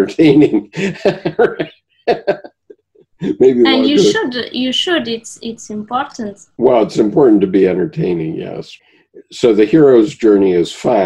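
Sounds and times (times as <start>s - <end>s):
man chuckling: 0.0s - 4.2s.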